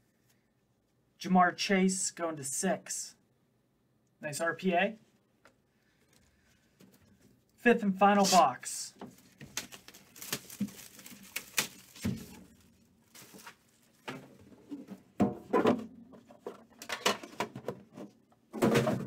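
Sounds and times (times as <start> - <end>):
plastic wrap crinkling: 9.1 - 14.1.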